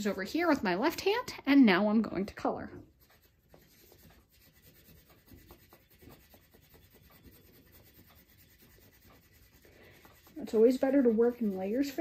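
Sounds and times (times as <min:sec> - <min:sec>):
crayon rubbing on card: 0:02.9 - 0:12.0.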